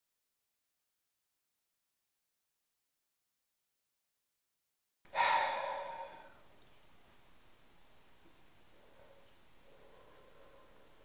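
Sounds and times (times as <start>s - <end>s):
breathy exhale: 5.1s - 6.5s
faint hiss: 5.1s - 11.0s.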